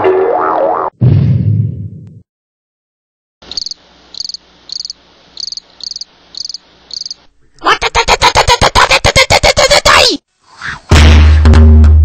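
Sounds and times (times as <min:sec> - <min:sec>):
crickets chirping: 0:03.4 - 0:07.4
faint steady hum: 0:03.4 - 0:07.7.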